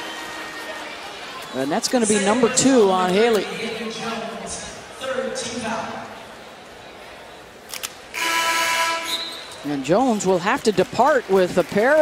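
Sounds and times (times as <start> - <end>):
arena horn buzzing blast: 8.2 - 9.4.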